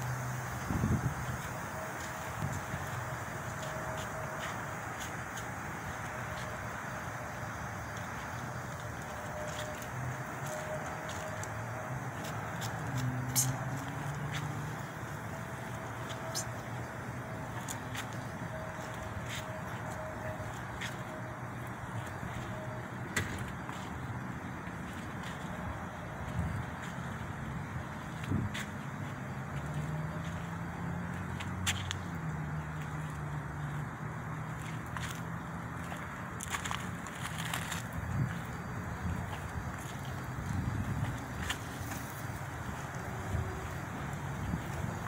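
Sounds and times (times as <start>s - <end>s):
outdoor background rumble: 0.0s - 45.0s.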